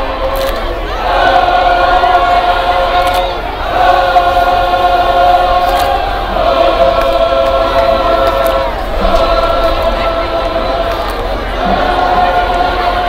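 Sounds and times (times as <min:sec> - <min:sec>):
people singing in unison: 0:00.0 - 0:13.0.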